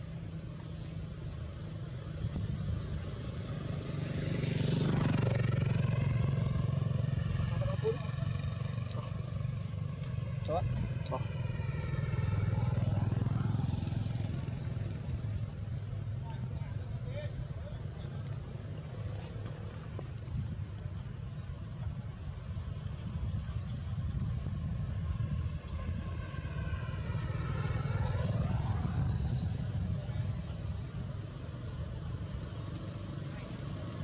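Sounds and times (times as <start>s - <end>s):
vehicle engine humming: 0.0s - 34.0s.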